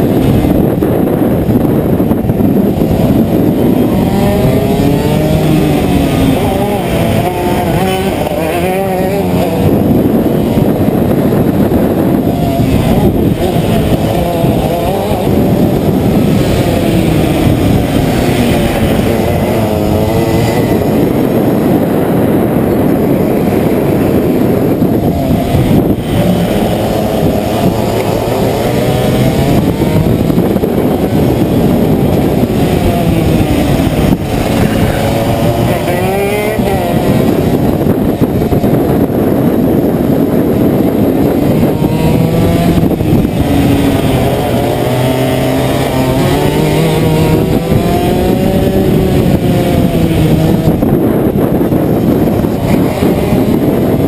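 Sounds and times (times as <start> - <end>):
kart engine revving: 0.0 - 54.0
nearby kart engines: 0.0 - 54.0.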